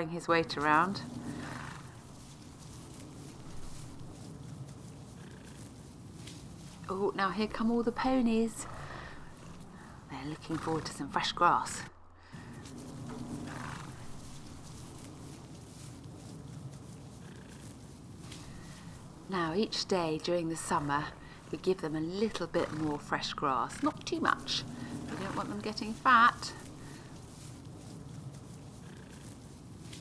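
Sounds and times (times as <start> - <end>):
low steady rumble: 0.0 - 29.9
ponies munching grass: 0.0 - 30.0.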